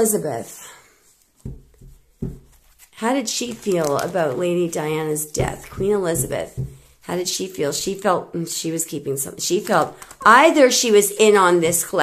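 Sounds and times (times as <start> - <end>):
cards knocking: 1.4 - 4.1, 5.3 - 7.0.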